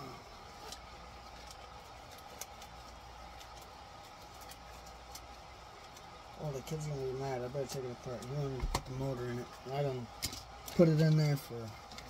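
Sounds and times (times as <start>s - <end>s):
faint background hum: 0.0s - 12.0s
small parts clicking and tapping: 10.1s - 12.0s.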